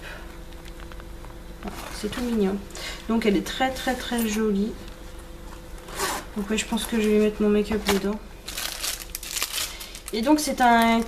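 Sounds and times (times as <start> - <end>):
packaging crinkling: 6.8 - 11.0.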